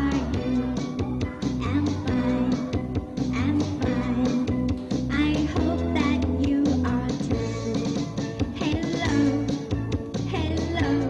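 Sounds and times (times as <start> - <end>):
upbeat children's song: 0.0 - 11.0.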